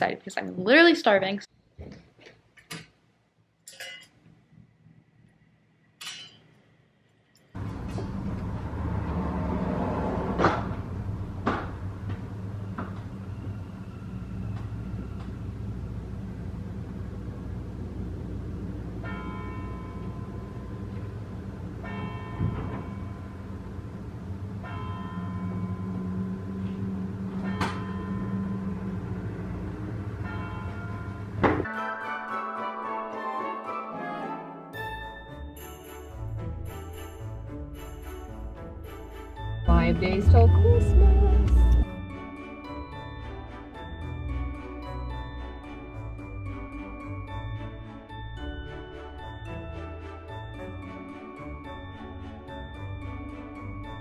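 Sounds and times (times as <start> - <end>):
outdoor street noise: 7.5 - 31.7
bells ringing: 11.0 - 31.8, 34.8 - 54.0.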